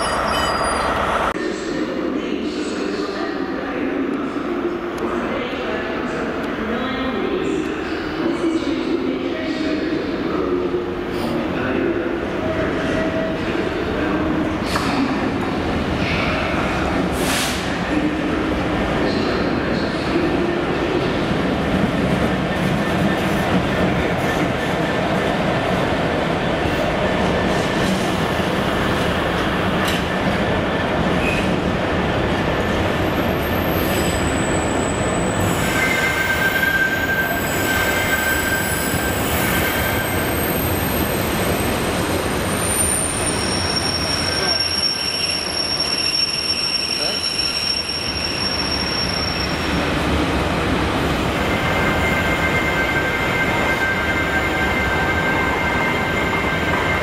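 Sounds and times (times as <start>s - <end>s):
train wheels squealing: 0.0s - 1.3s, 33.3s - 49.8s.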